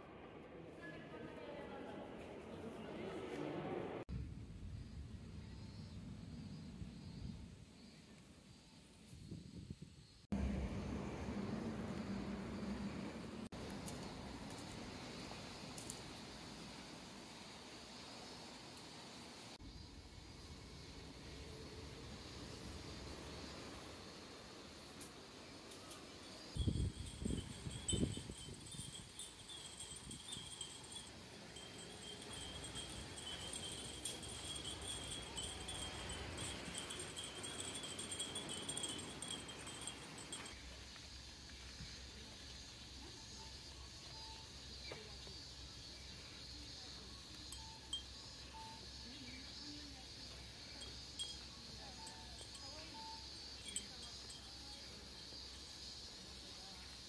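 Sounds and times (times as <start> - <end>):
glass wind chimes tinkling: 26.4 - 40.6, 47.4 - 48.8, 50.7 - 55.2.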